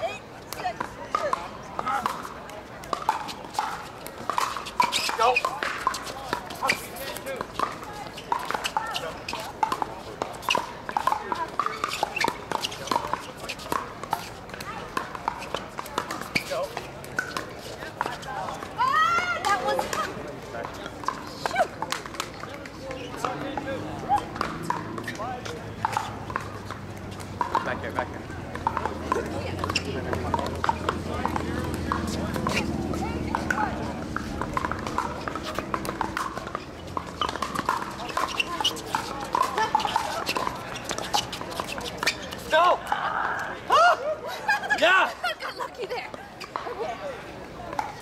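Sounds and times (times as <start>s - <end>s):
players chatting: 0.0s - 48.0s
paddles hitting plastic balls: 19.4s - 43.0s.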